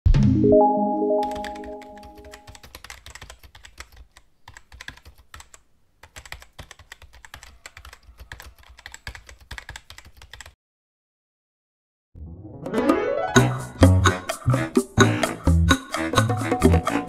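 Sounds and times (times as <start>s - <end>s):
chime ringing: 0.4s - 2.3s.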